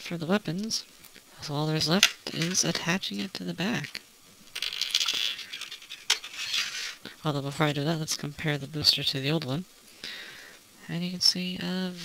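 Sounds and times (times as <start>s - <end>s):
plastic parts scraping and rubbing: 1.8s - 7.9s.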